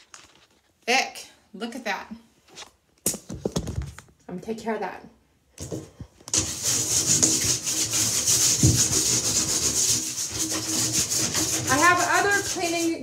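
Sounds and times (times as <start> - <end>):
woman speaking: 4.3 - 5.2, 11.7 - 13.0
plastic hanger scraping bathtub: 6.3 - 13.0.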